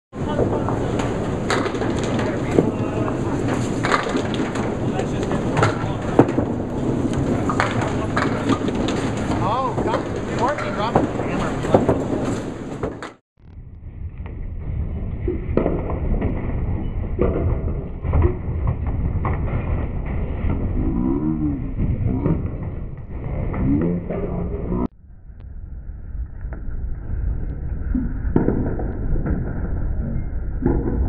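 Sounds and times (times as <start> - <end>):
bowling balls rolling: 0.2 - 13.2, 14.2 - 24.9, 26.2 - 31.0.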